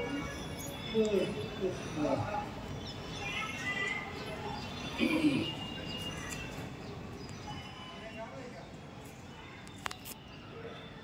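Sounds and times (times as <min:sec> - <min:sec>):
distant people talking: 0:00.0 - 0:11.0.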